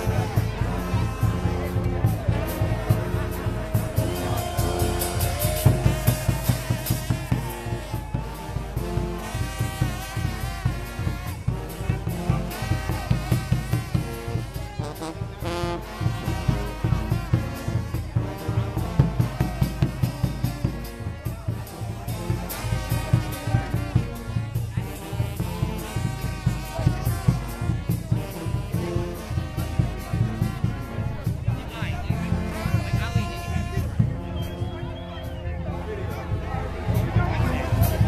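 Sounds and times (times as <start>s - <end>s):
brass band playing: 0.0s - 38.0s
crowd voices: 0.0s - 38.0s
steady drum beat: 0.0s - 38.0s.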